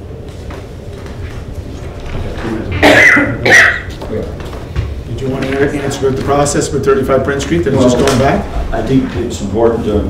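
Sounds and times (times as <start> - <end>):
person coughing: 2.7 - 3.9.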